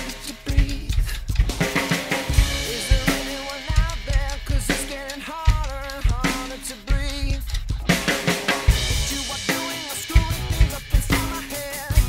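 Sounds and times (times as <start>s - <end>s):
cymbals: 0.0s - 12.0s
pop-rock backing track: 0.0s - 12.0s
snare drum: 0.0s - 12.0s.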